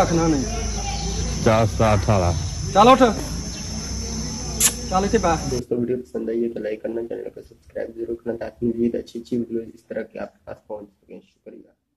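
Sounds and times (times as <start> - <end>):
insects chirring: 0.0 - 5.6.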